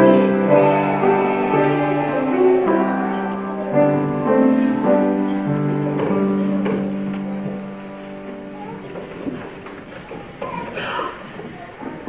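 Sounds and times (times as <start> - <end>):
held piano chord ringing: 0.0 - 8.8.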